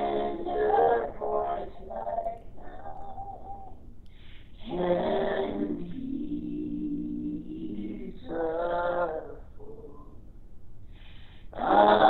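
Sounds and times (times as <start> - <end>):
people singing in harmony: 0.0 - 3.8, 4.6 - 10.2, 11.5 - 12.0.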